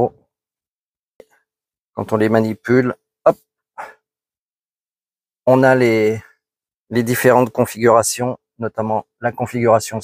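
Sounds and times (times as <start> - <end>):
man speaking: 2.0 - 4.0, 5.5 - 10.0.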